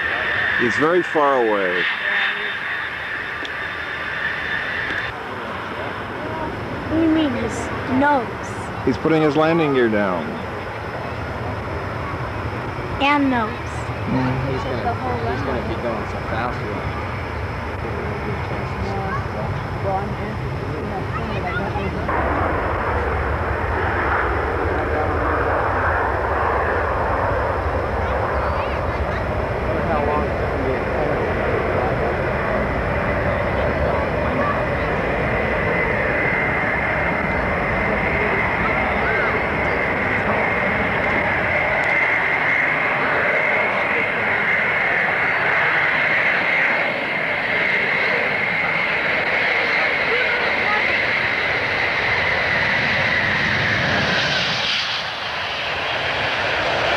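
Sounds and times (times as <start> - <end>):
jet engines rushing and whining: 0.0 - 56.9.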